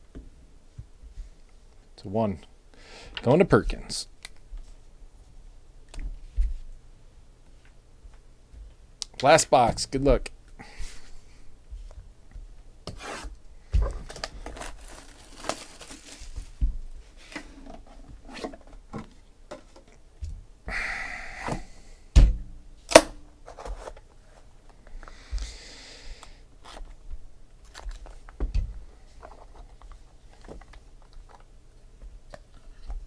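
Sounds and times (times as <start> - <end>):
wrapper tearing and crinkling: 14.0 - 16.4.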